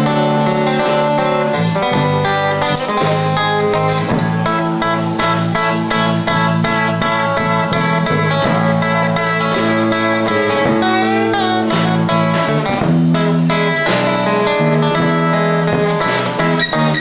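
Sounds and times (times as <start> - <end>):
bending melody line: 0.0 - 17.0
strummed acoustic guitar chords: 0.0 - 17.0.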